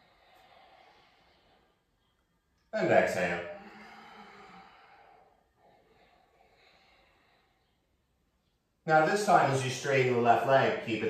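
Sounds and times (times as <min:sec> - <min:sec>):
person exhaling softly: 0:03.4 - 0:07.8.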